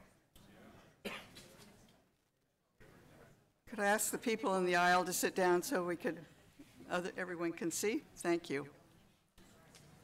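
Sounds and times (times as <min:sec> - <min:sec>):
person coughing: 0:01.0 - 0:01.4.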